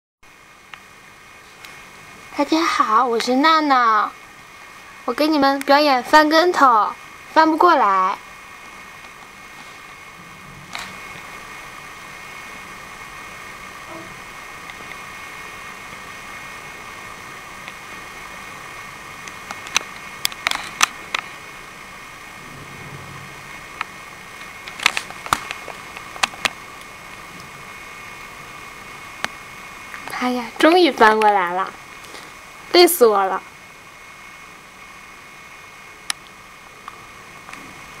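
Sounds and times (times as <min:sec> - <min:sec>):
camera recording noise whine: 0:00.2 - 0:38.0
steady background hiss: 0:00.3 - 0:38.0.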